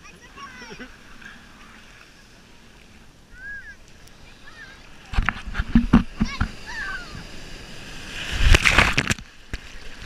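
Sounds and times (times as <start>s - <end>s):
surf slapping and splashing: 0.0s - 10.0s.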